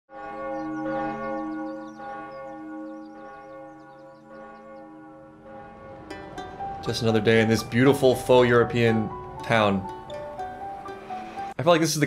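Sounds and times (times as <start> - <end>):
church bells tolling: 0.1 - 11.6.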